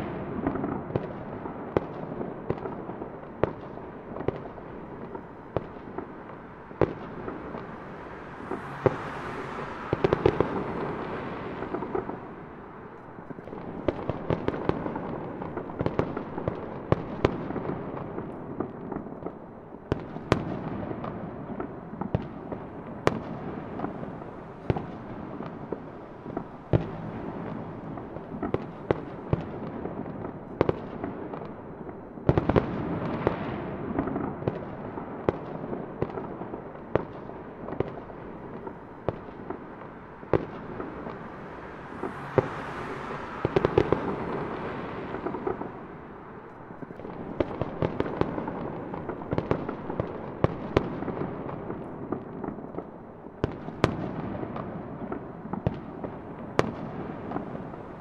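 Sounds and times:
fireworks bursting: 0:00.0 - 0:58.0.

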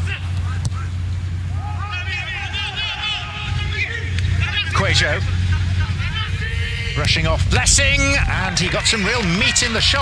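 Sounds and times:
broadcast feed low hum: 0:00.0 - 0:10.0
players calling and shouting: 0:00.0 - 0:10.0.

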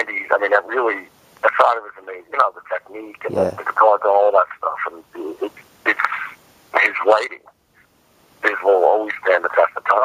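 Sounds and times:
man talking: 0:00.0 - 0:05.0.

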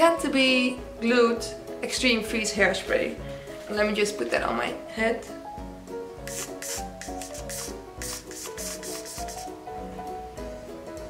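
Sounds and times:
background music: 0:00.0 - 0:11.0
hairspray hissing bursts: 0:06.2 - 0:09.6.

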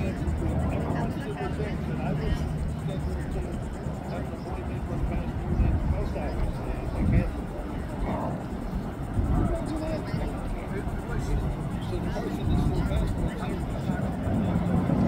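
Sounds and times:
indistinct voices talking: 0:00.0 - 0:15.0
low outdoor rumble: 0:00.0 - 0:15.0.

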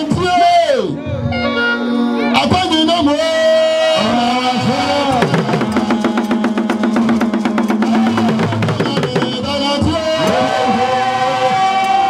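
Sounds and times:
person singing into a microphone: 0:03.2 - 0:12.0
drums: 0:04.0 - 0:12.0.

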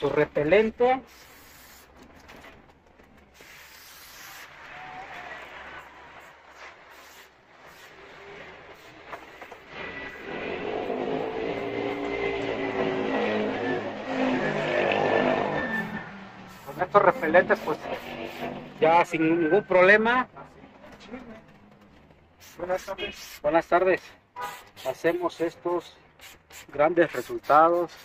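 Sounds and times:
short spray hisses: 0:01.0 - 0:02.0, 0:03.4 - 0:04.6, 0:06.5 - 0:08.1, 0:22.4 - 0:23.5, 0:24.4 - 0:25.0, 0:26.2 - 0:28.0
vehicle engine passing: 0:08.0 - 0:19.6.

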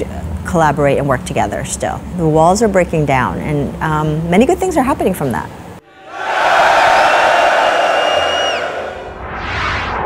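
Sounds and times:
crowd cheering: 0:05.9 - 0:09.2
high sliding whistle: 0:05.9 - 0:10.0.

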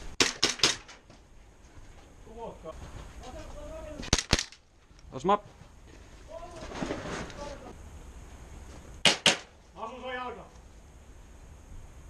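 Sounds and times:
airsoft gun cracks: 0:00.2 - 0:01.0, 0:04.0 - 0:04.6, 0:09.0 - 0:09.5.

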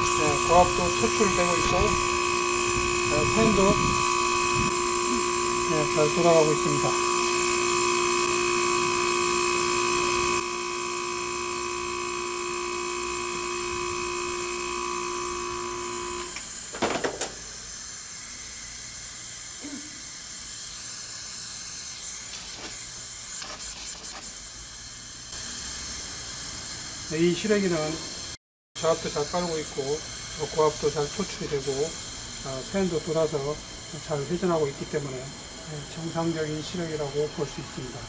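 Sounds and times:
gas hissing from port: 0:00.0 - 0:10.6, 0:12.0 - 0:38.0
air conditioner compressor and fan hum: 0:00.0 - 0:38.0.

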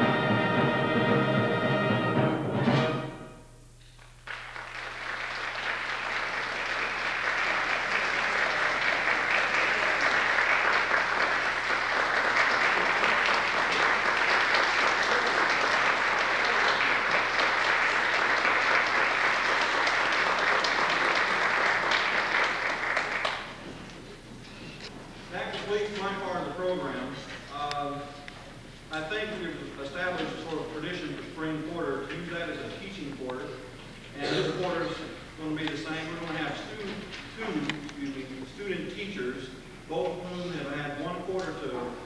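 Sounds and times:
audience applauding: 0:04.0 - 0:24.2.

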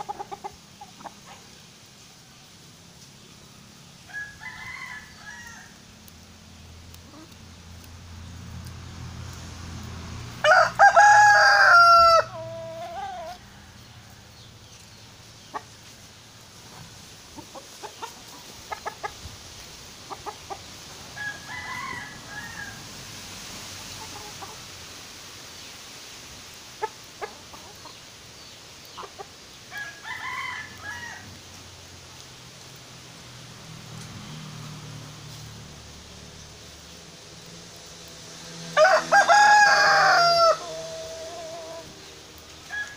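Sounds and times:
hens clucking softly: 0:00.0 - 0:01.6, 0:16.6 - 0:19.3, 0:20.0 - 0:21.0, 0:23.7 - 0:24.8, 0:26.8 - 0:28.1
rooster crowing: 0:04.1 - 0:05.8, 0:10.4 - 0:14.3, 0:21.2 - 0:22.9, 0:29.7 - 0:31.4, 0:38.7 - 0:42.9.

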